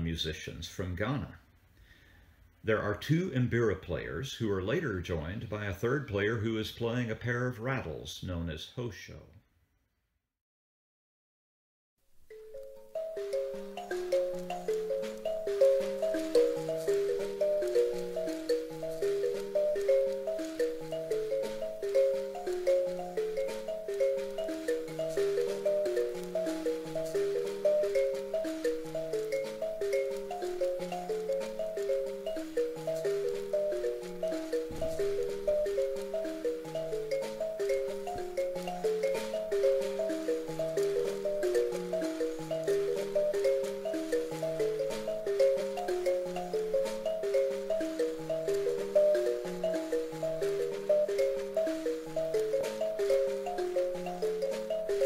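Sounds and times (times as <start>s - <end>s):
thumb pianos plucked: 12.3s - 55.0s.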